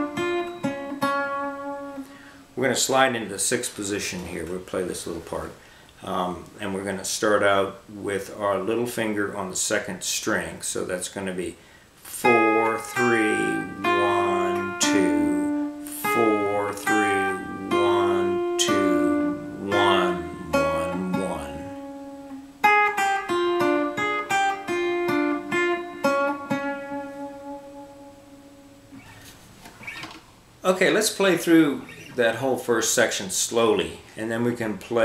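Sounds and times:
clean electric guitar melody: 0.0s - 2.2s, 12.3s - 29.0s.

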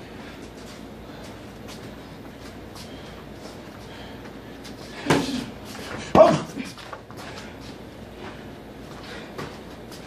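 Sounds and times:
boxer exertion shout: 6.1s - 6.7s.

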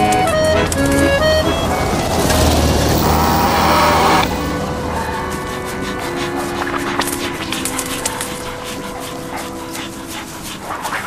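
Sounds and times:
faint sustained music notes: 0.0s - 11.0s
dog panting: 0.1s - 2.7s, 4.3s - 11.0s.

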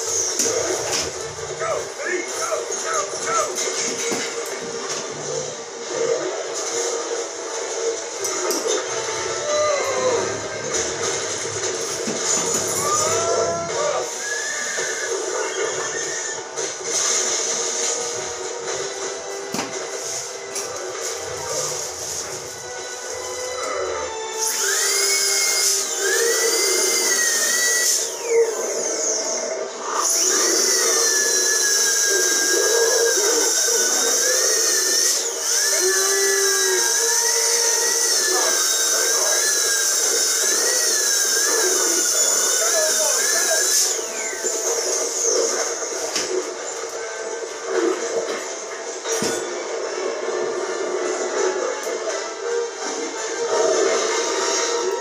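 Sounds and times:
background music: 0.0s - 55.0s
dental drill whining: 11.8s - 16.5s, 20.3s - 47.0s.

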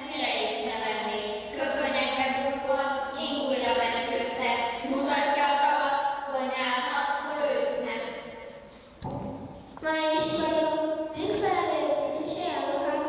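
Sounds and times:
child speaking into a microphone: 0.0s - 13.0s.

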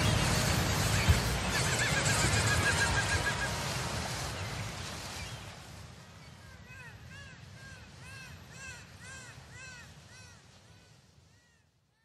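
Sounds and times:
harsh cawing bird calls: 6.6s - 10.6s.

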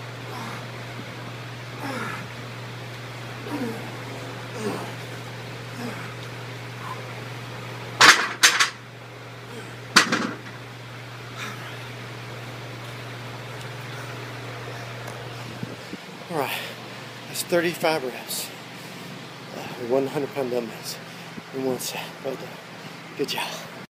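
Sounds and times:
steady low hum: 0.0s - 23.9s
dumbbells clanking onto rack: 10.0s - 10.5s.

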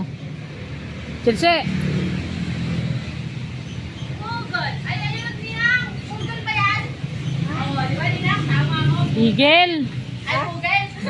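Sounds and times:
high-pitched voices calling: 3.6s - 11.0s.

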